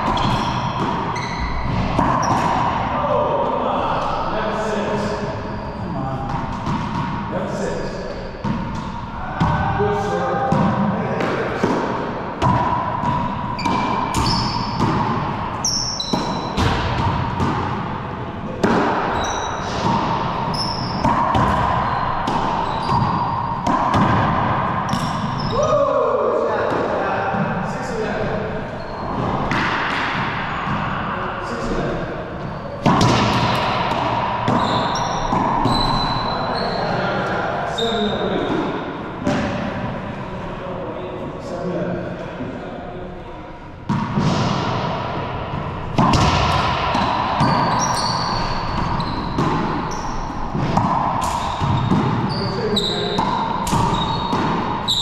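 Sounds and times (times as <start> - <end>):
sneakers squeaking on hardwood: 0.0 - 2.6, 12.4 - 17.5, 19.0 - 25.5, 28.7 - 30.9, 32.4 - 33.6, 34.5 - 37.1, 47.0 - 55.0
ball hits echoing: 10.5 - 25.5, 29.1 - 30.9, 32.8 - 36.4, 43.9 - 55.0.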